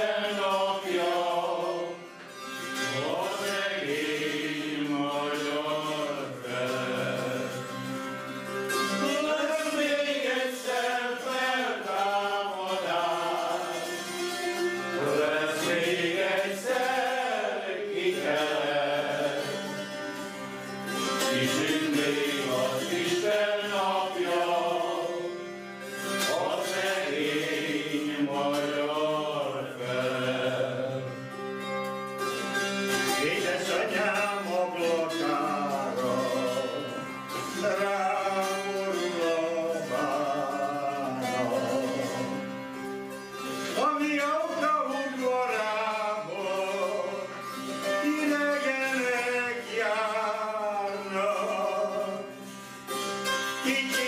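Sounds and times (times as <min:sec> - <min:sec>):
men singing folk song: 0:00.0 - 0:31.6, 0:32.8 - 0:54.0.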